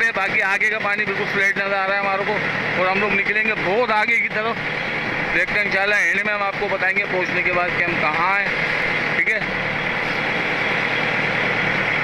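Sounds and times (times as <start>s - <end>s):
boat engine humming: 0.0s - 12.0s
water rushing along hull: 0.0s - 12.0s.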